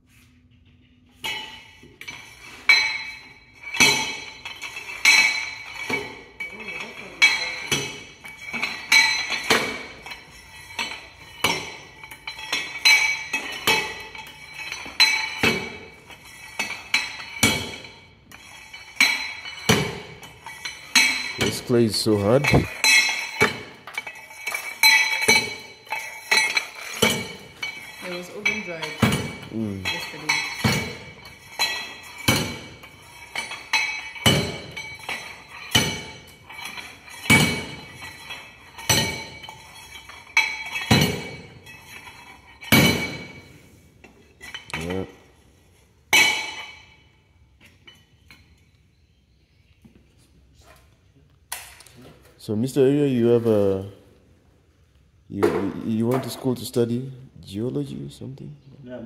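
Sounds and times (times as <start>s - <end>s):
steel rammer clanking: 1.3s - 43.5s.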